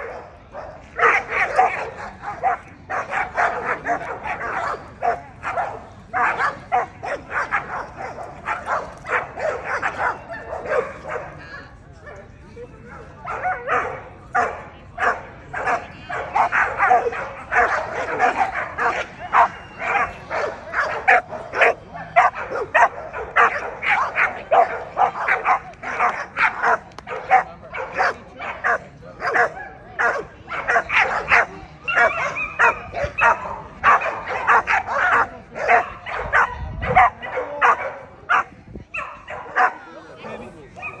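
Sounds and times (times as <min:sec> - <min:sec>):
dog barking: 0:00.0 - 0:11.2, 0:13.3 - 0:39.8.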